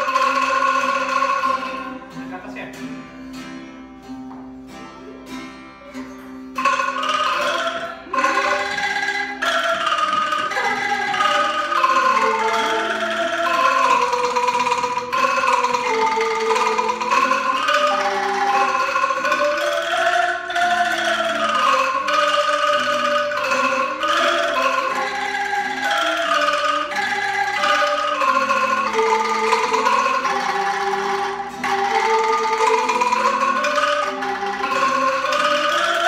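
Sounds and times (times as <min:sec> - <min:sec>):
angklung ensemble playing melody: 0:00.0 - 0:36.0.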